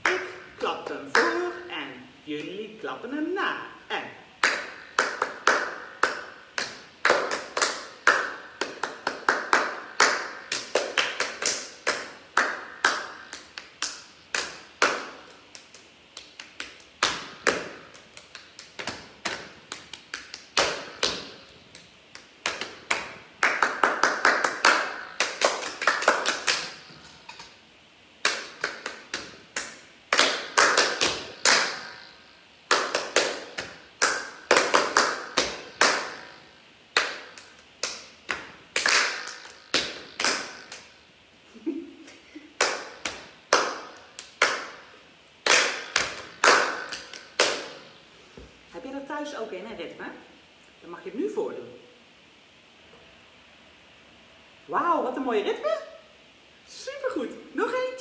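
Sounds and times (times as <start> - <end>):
rhythmic hand clapping: 0.0 - 1.6, 4.4 - 27.5, 28.2 - 41.0, 41.6 - 47.9
hands patting thighs: 4.4 - 27.4.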